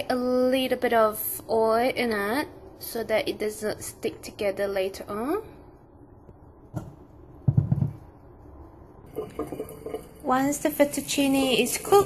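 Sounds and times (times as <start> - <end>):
water in cooking pot: 9.0 - 12.0.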